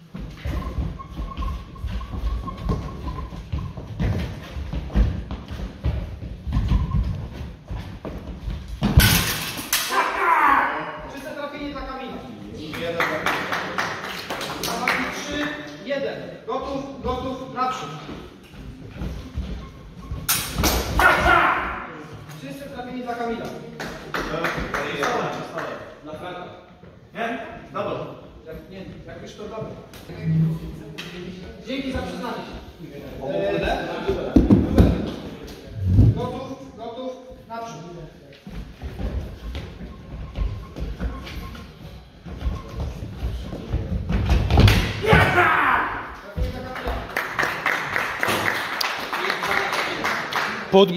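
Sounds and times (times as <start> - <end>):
man shouting: 9.9 - 11.1, 21.0 - 22.0, 45.0 - 46.1.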